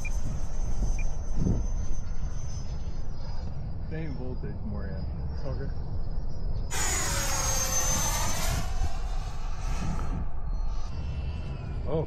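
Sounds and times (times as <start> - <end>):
wind rumble on microphone: 0.0 - 12.0
model jet fan whine: 6.7 - 10.4.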